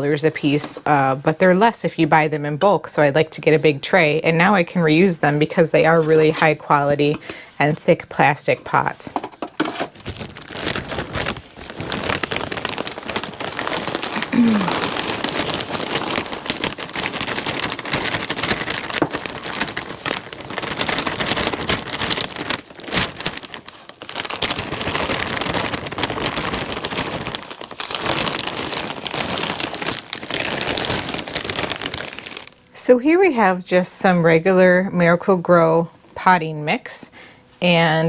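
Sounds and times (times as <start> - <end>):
plastic bag crinkling: 4.9 - 32.8.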